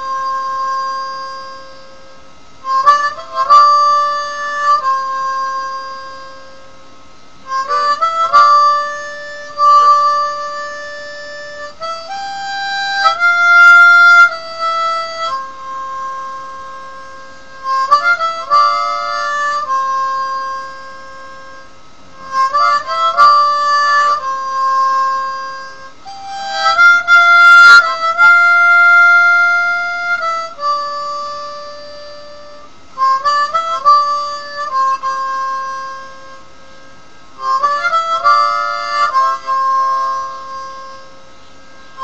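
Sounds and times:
harmonica holding long note: 0.0 - 42.0.

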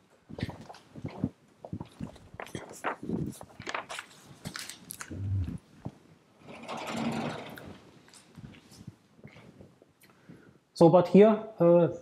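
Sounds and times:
paper rustling: 2.1 - 5.1.

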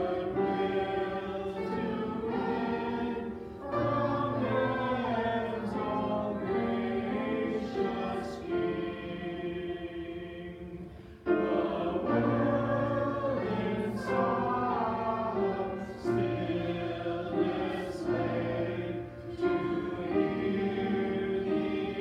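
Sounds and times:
congregation singing a hymn: 0.0 - 22.0.

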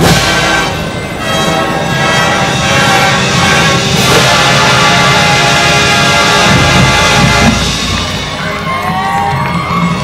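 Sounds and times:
marching band playing: 0.0 - 10.0
percussion: 0.0 - 10.0
crowd whooping and cheering: 7.9 - 10.0.

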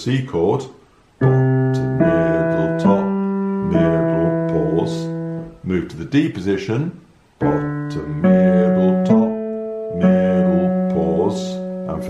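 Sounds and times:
digital piano notes ringing: 1.2 - 5.7, 7.4 - 12.0.

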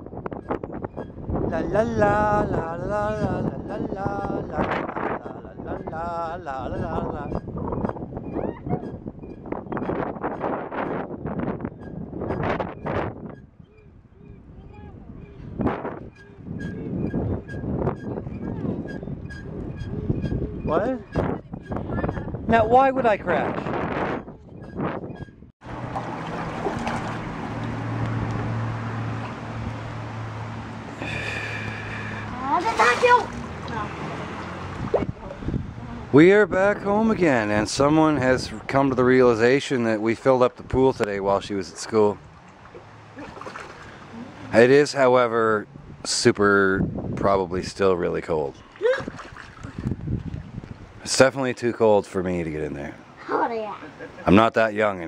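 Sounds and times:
water sloshing and splashing: 25.6 - 30.0, 32.0 - 35.5, 41.8 - 44.5, 48.5 - 50.9.

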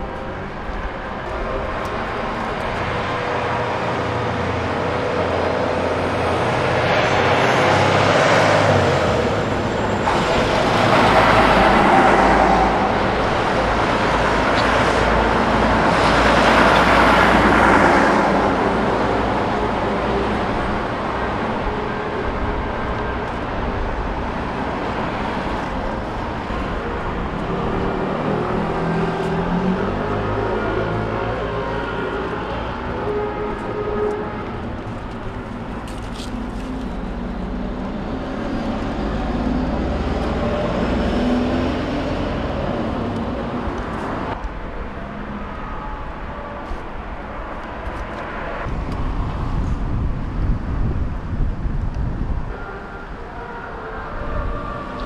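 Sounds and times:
road traffic passing: 0.0 - 55.0
truck passing: 0.0 - 55.0.

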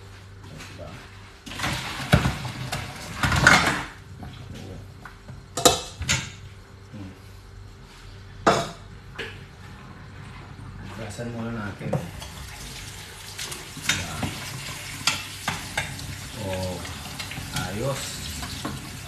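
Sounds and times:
water gushing into sink: 11.9 - 19.0.

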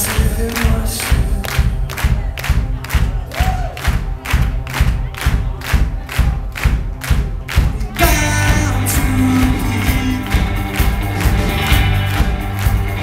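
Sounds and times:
audience singing and shouting: 0.0 - 13.0
live band drum beat: 0.0 - 13.0.

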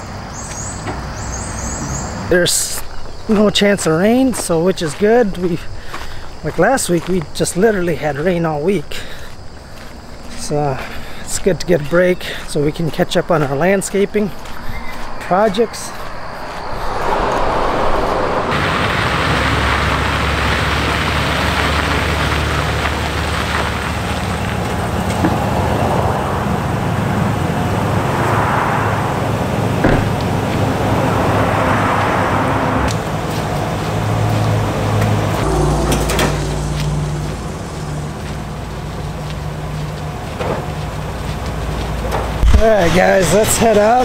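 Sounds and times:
truck engine idling: 18.2 - 44.0.

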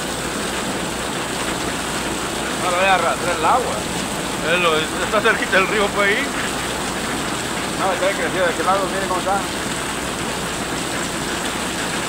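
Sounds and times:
heavy rain on flooded street: 0.0 - 12.0
runoff splashing into water: 0.0 - 12.0.

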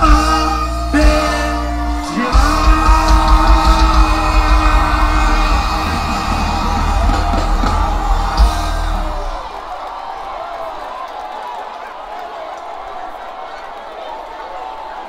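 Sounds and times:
person singing: 0.0 - 9.4
live band playing: 0.0 - 9.5
pounding bass beat: 0.0 - 9.5
people yelling and whooping: 2.0 - 12.0.

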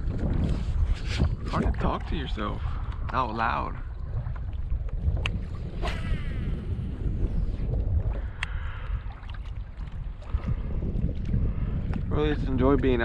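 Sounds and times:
wind buffeting microphone: 0.0 - 13.0.

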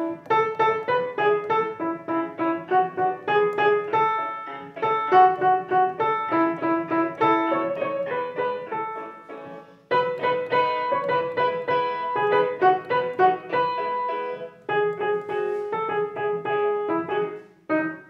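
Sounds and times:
upright piano melody: 0.0 - 18.0.

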